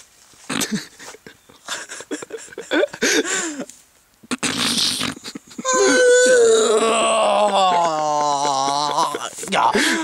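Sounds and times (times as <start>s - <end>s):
man laughing breathily: 0.6s - 3.7s, 5.1s - 6.1s, 6.7s - 10.0s
man wailing sliding down in pitch: 5.6s - 9.2s.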